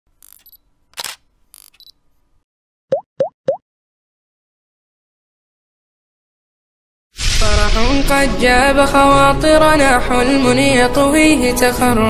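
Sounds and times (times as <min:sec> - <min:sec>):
quick pops rising in pitch: 0:02.9 - 0:03.6.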